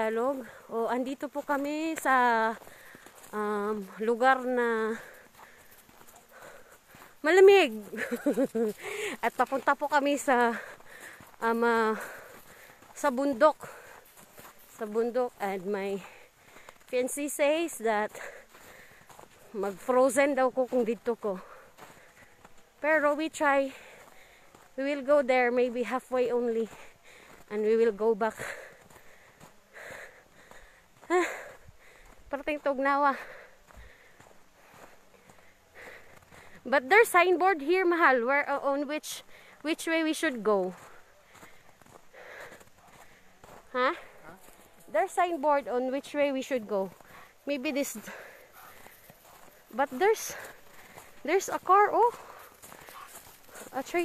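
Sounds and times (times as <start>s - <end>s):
footsteps crunching in snow: 0.0s - 54.0s.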